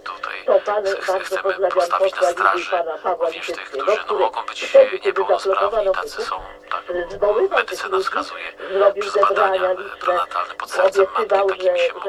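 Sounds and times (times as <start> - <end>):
faint steady hum: 0.0 - 12.0
radio speech: 0.0 - 12.0.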